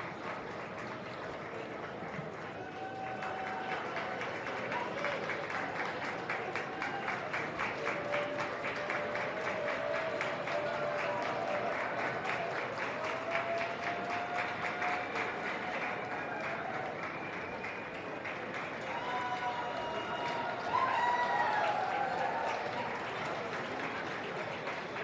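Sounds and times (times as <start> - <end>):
audience applauding: 0.0 - 25.0.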